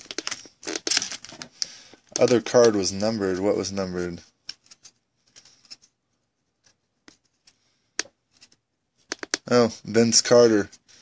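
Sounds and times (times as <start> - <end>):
cards flipped through by hand: 0.0 - 3.4, 4.0 - 6.0, 6.6 - 9.5.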